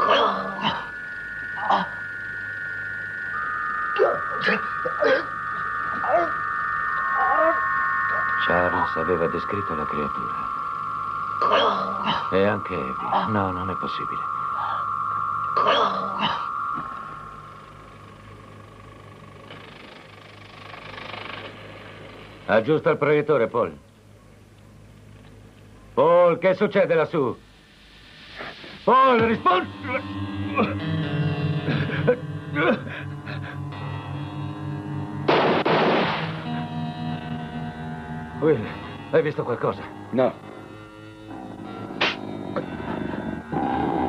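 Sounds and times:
high-pitched tone: 0.0 - 20.6, 29.0 - 43.7
droning dramatic music: 0.0 - 23.0, 28.9 - 44.0
low hum: 0.0 - 44.0
soft hiss: 0.9 - 29.6
loud crash: 35.3 - 36.5.

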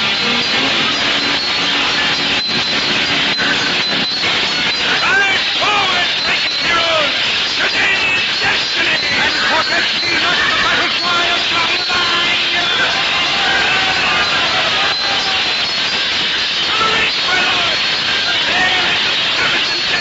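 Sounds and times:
men shouting: 4.8 - 15.8, 16.6 - 20.0.

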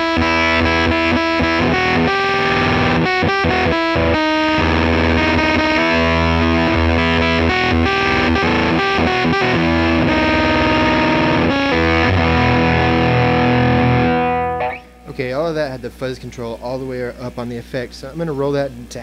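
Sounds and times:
distorted fuzz electric guitar: 0.0 - 15.4.

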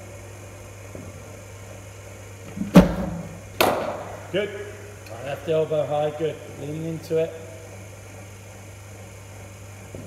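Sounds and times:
bowling machine thump: 2.5 - 4.2
cricket bat hitting ball: 2.7 - 4.2.

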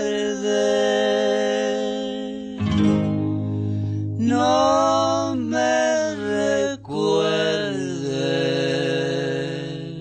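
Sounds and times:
voices singing in harmony: 0.0 - 2.8, 4.2 - 10.0.

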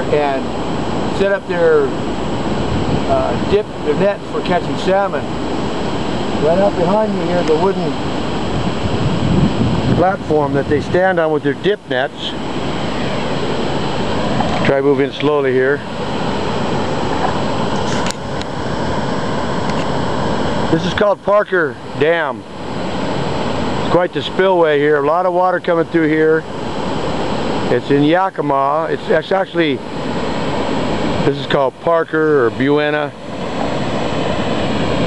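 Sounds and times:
river water rushing over dam: 0.0 - 35.0.

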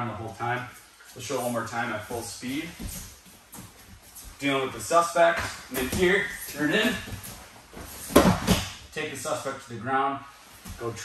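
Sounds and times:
body thudding on foam mat: 5.5 - 8.8.

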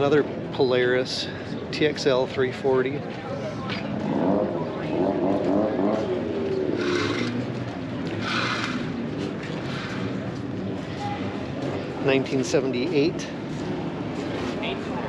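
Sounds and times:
vehicle engine running: 4.0 - 11.8.

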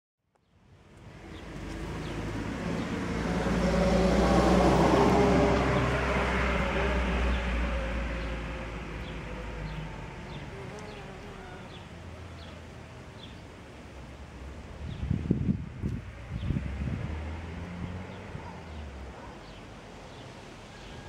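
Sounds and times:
vehicle passing by: 1.0 - 21.0.

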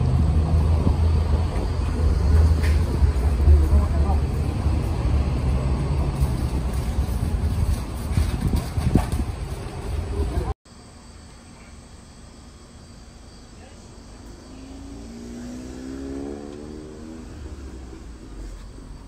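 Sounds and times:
steady low rumble: 0.0 - 10.6.

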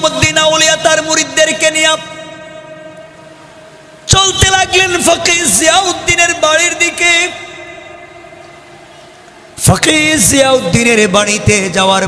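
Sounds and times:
person speaking over loudspeakers: 0.0 - 3.2, 4.0 - 8.8, 9.6 - 12.0.

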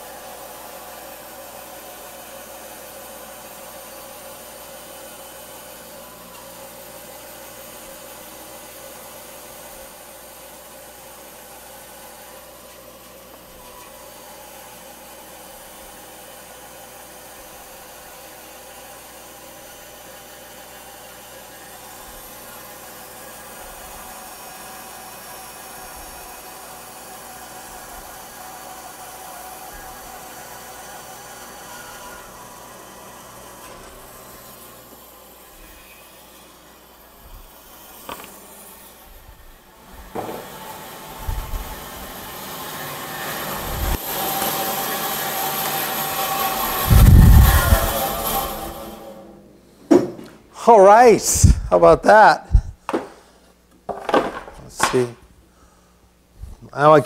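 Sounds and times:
bandsaw cutting wood: 12.9 - 49.4.

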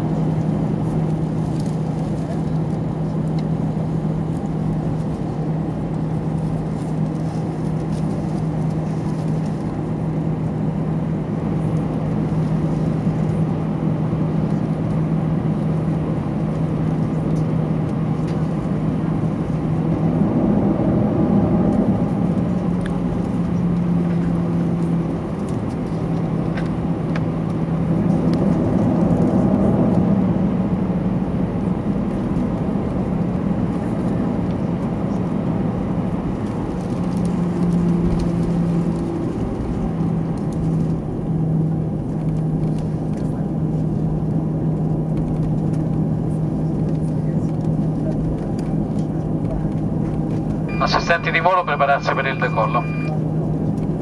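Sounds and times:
constant rushing noise: 0.0 - 54.0
jet engines humming: 0.0 - 54.0.

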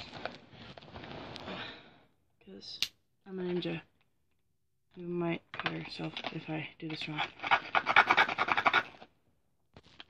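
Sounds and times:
plastic packaging rasping scrape: 7.3 - 9.1.

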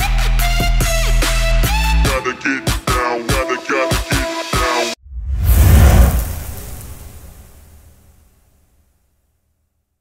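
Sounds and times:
deep boom with hissing whoosh: 5.0 - 7.9.

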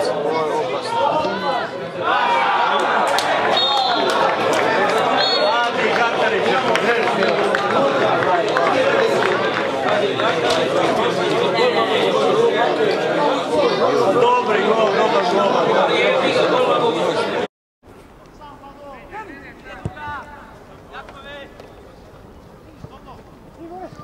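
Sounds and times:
football crowd shouting and cheering: 0.0 - 17.5, 18.4 - 24.0.

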